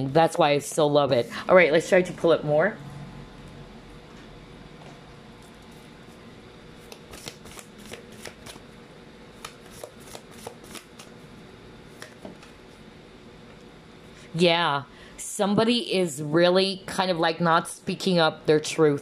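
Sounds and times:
cards sliding: 6.9s - 8.6s.

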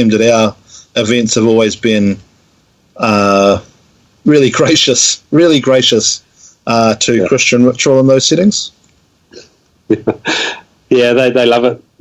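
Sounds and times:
person talking: 4.3s - 8.8s.

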